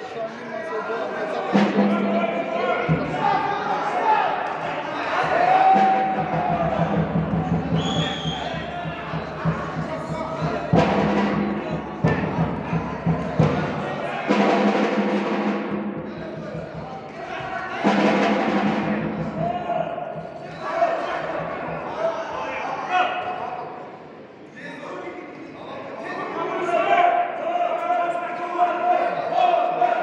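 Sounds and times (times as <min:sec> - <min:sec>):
crowd shouting: 0:00.0 - 0:15.0, 0:15.9 - 0:23.9, 0:26.1 - 0:30.0.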